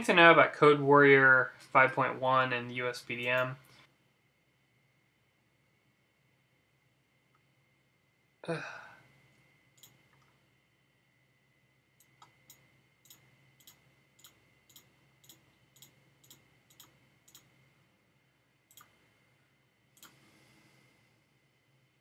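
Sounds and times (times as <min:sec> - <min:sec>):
computer mouse clicks: 0:09.8 - 0:10.4, 0:12.0 - 0:17.5, 0:18.7 - 0:19.0, 0:20.0 - 0:20.2.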